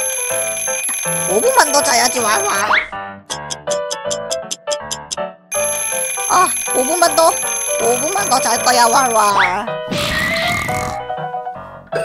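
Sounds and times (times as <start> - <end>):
cartoon alarm clock ringing: 0.0 - 9.6
background music: 0.0 - 12.0
short high clock ticks: 3.3 - 5.2.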